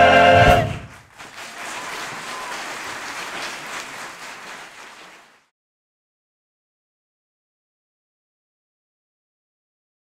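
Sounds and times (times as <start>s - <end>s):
applause: 0.8s - 5.5s.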